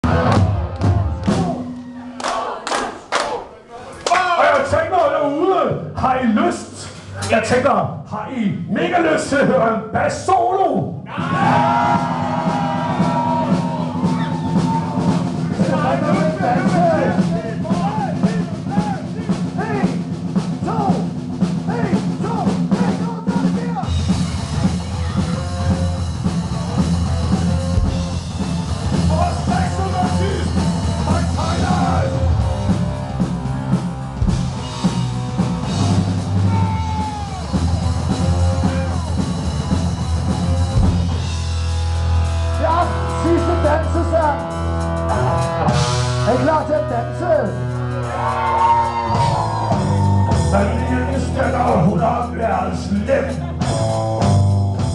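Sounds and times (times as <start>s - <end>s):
electric bass: 0.0s - 1.8s, 23.8s - 54.9s
drum kit: 0.0s - 2.9s, 10.8s - 54.9s.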